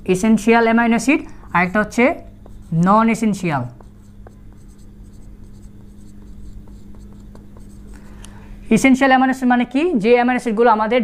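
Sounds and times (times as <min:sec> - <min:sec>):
marker writing on whiteboard: 0:01.2 - 0:08.1.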